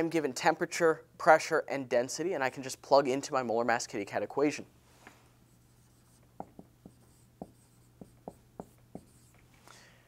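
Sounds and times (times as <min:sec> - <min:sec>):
marker writing on whiteboard: 0:05.5 - 0:09.5.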